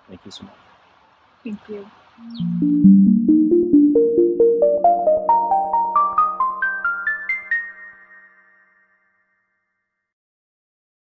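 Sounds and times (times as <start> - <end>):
rising struck notes: 2.2 - 7.9.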